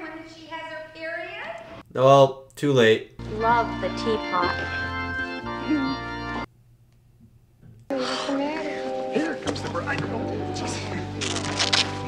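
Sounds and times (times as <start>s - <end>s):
organ playing held chords: 3.2s - 6.5s, 8.0s - 12.0s.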